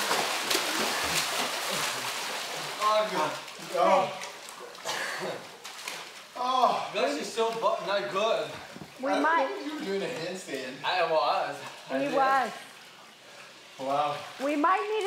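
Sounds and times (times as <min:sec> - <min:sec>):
pool water splashing: 0:00.0 - 0:15.0.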